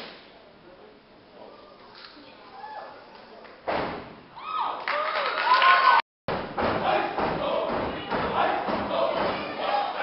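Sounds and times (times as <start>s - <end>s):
loud stomp on stage floor: 6.3s - 9.6s
high voices shouting: 6.8s - 10.0s.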